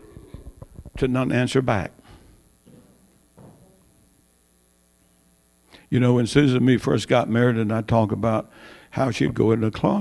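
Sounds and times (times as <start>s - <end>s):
faint mains hum: 0.0s - 10.0s
man speaking: 1.0s - 2.0s, 5.9s - 10.0s.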